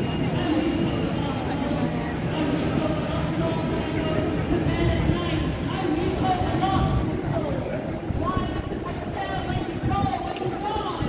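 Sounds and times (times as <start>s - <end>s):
passersby talking: 0.0s - 11.0s
steady traffic noise: 0.0s - 11.0s.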